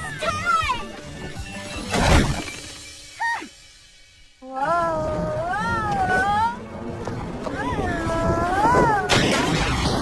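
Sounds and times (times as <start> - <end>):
cartoon crash: 9.1 - 10.0.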